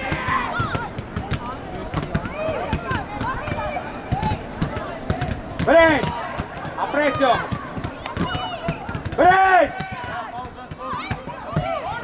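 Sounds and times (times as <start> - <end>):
football players shouting: 0.0 - 12.0.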